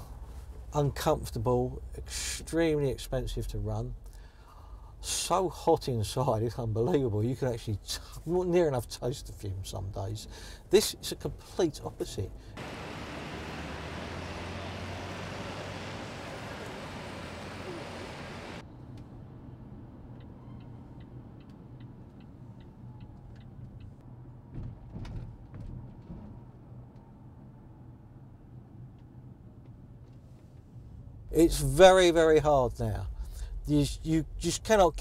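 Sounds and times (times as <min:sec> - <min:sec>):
street traffic noise: 0:10.2 - 0:31.6
low road rumble inside car: 0:12.2 - 0:25.4
electric taxi driving past: 0:12.6 - 0:18.6.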